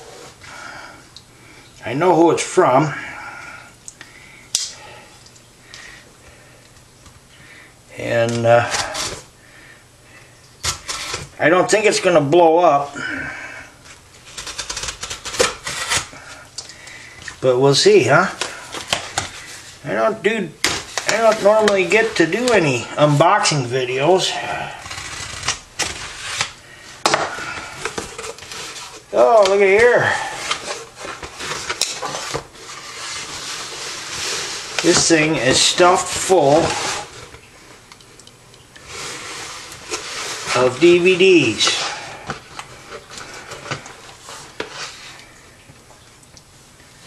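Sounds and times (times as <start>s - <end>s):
knife cutting cardboard: 24.6s - 29.0s.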